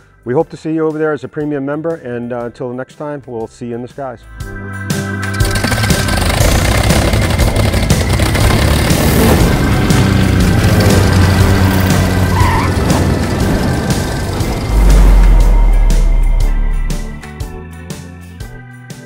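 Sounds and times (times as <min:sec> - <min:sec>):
low drone: 0:08.7 - 0:17.6
deep bass hit: 0:12.8 - 0:17.6
airplane fly-past whoosh: 0:13.0 - 0:17.3
logo sting music: 0:13.2 - 0:17.7.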